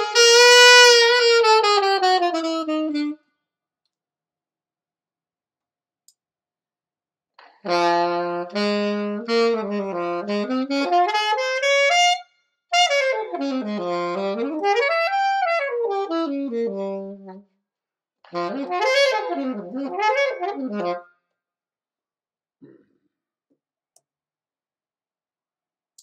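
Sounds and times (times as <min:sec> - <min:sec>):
saxophone playing: 0:00.0 - 0:03.2, 0:07.6 - 0:17.4, 0:18.3 - 0:21.0.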